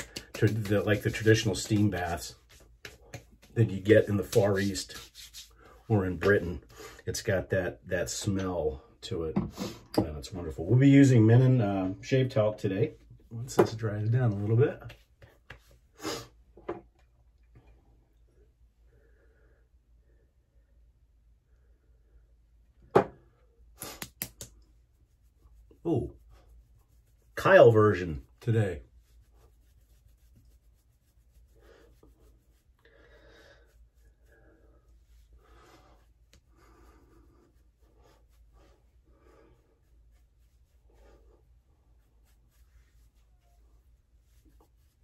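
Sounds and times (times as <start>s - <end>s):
hands rubbing skin: 0.0s - 6.8s, 13.7s - 16.2s, 23.8s - 45.0s.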